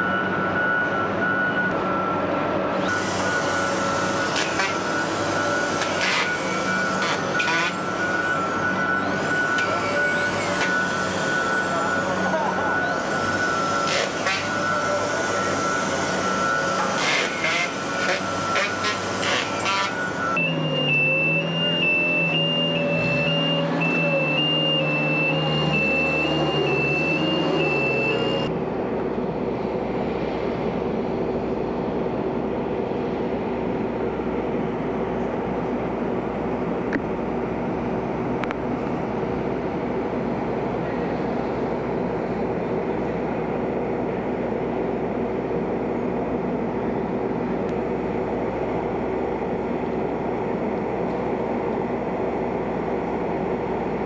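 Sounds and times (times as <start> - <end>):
machinery high whine: 0.0 - 54.0
pulsing high tone: 2.8 - 28.5.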